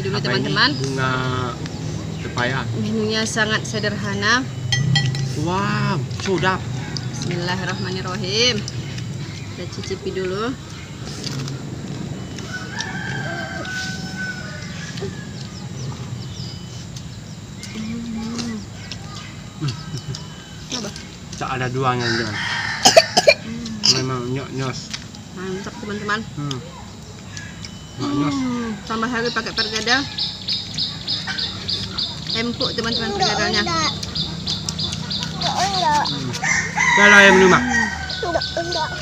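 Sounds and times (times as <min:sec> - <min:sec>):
bird chirping: 0:00.0 - 0:39.0
rooster crowing: 0:12.3 - 0:16.1, 0:21.8 - 0:23.4, 0:35.4 - 0:39.0.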